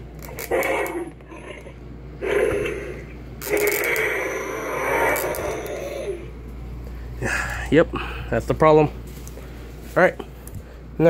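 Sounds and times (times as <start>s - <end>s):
plastic toy mechanism grinding: 0.2s - 1.3s, 3.4s - 6.0s.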